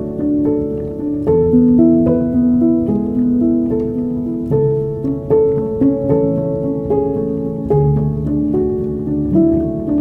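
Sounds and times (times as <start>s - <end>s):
slow piano music: 0.0s - 10.0s.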